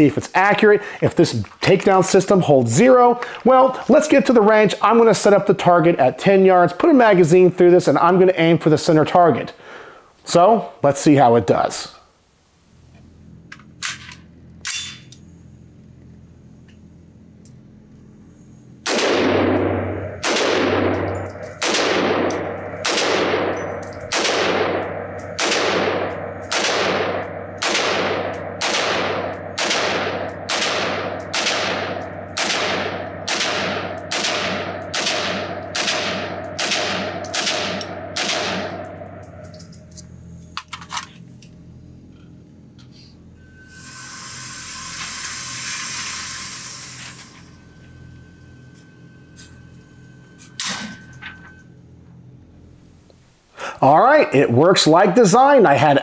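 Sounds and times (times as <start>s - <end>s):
rifle shots echoing indoors: 18.8s - 39.5s
target carrier whirring: 18.8s - 41.5s.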